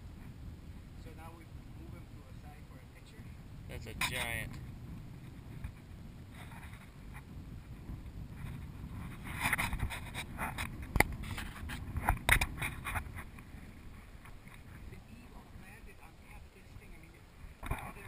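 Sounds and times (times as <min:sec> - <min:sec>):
wind rumble on microphone: 0:00.0 - 0:18.0.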